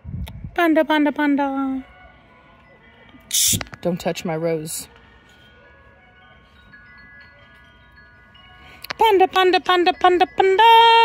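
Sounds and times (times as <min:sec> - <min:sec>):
wind chimes ringing: 0:01.6 - 0:11.0.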